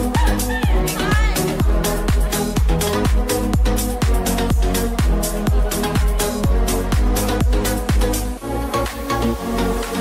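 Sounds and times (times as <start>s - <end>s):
steady kick-drum beat: 0.0s - 8.4s
electronic dance music: 0.0s - 10.0s
held synth chords: 0.0s - 10.0s.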